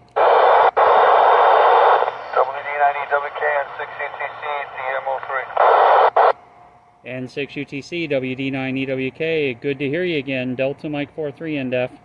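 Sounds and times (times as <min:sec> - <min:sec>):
radio voice over speaker: 0:00.2 - 0:06.3
radio hiss: 0:00.2 - 0:06.4.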